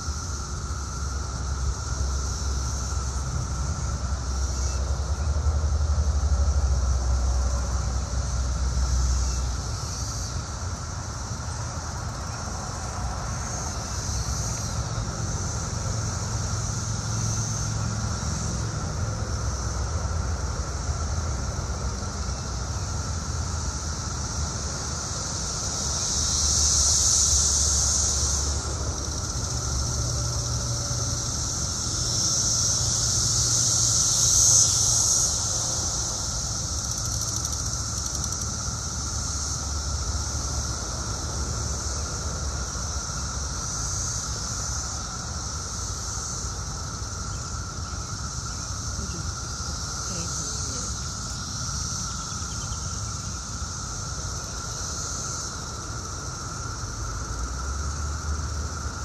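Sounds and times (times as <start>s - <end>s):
cicadas buzzing: 0.0s - 59.0s.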